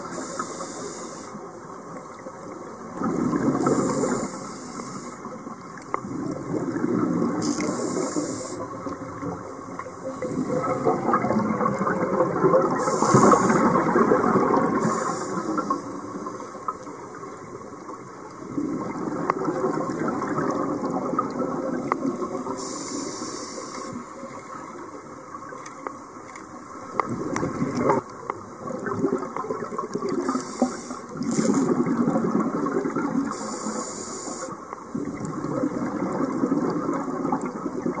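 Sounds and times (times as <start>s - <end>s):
regulator hiss on inhale: 0.0s - 1.5s, 3.5s - 5.3s, 7.4s - 8.9s, 12.8s - 14.0s, 14.8s - 16.7s, 22.5s - 24.7s, 30.2s - 31.7s, 33.3s - 34.8s
bubbling of exhaled air: 2.9s - 5.4s, 6.0s - 17.3s, 18.4s - 24.6s, 28.6s - 38.0s.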